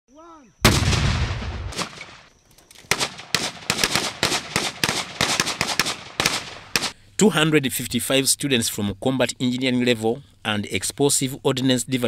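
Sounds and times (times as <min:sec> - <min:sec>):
loud explosion with low rumble: 0:00.6 - 0:01.9
single rifle shots: 0:00.6 - 0:07.0.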